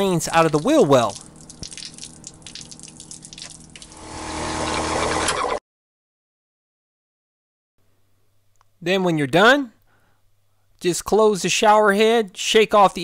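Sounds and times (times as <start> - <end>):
water splashing onto concrete: 0.0 - 4.0
faint steady hum: 0.0 - 5.4, 9.7 - 10.9.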